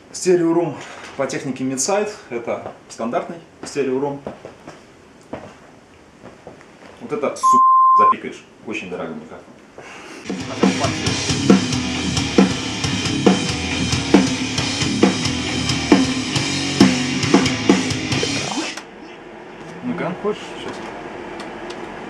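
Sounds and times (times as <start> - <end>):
heavy metal drum beat: 10.3 - 18.6.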